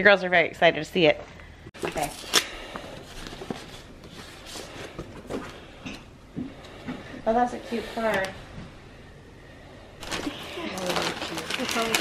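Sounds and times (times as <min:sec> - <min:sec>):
paper rustling and rubbing: 0:03.0 - 0:05.3, 0:10.0 - 0:12.0.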